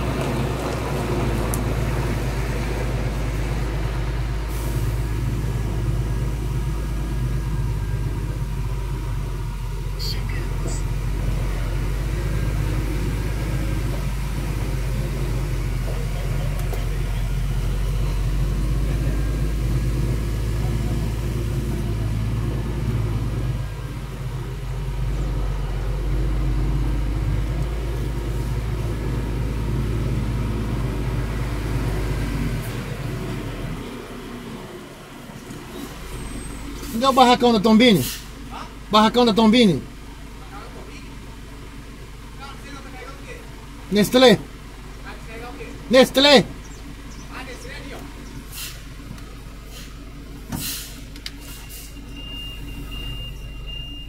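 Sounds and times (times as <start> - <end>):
diesel truck engine drone: 0.0 - 54.0.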